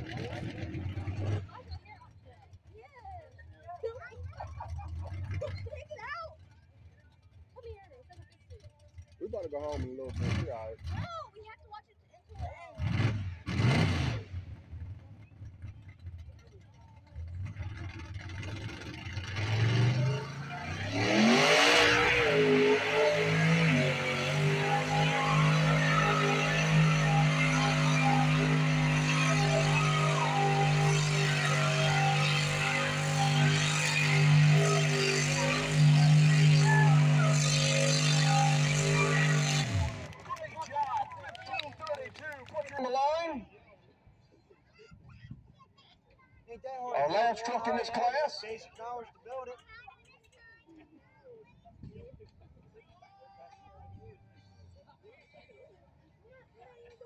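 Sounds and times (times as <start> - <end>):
truck engine revving: 0.0 - 2.2, 4.2 - 7.0, 8.6 - 11.1, 12.7 - 42.9.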